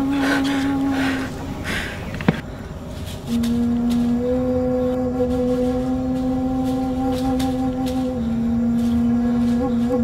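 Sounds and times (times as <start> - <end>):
long steady horn-like note: 0.0 - 10.0.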